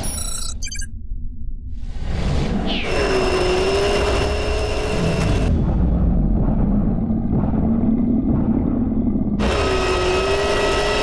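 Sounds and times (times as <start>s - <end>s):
ringing high electronic tones: 0.0s - 0.9s.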